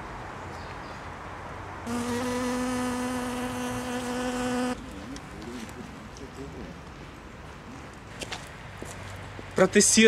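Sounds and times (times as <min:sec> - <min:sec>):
honeybee buzzing: 0:01.9 - 0:04.8.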